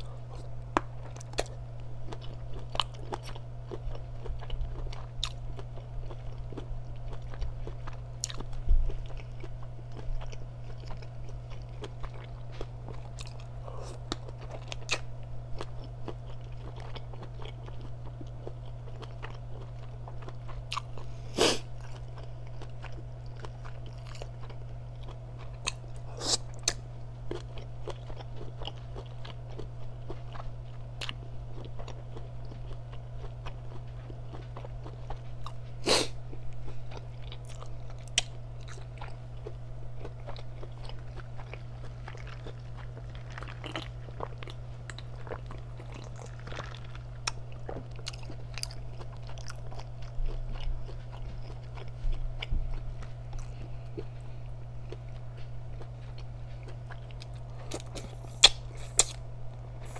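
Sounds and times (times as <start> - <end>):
chewing: 0.0 - 59.2
steady low hum: 0.0 - 59.9.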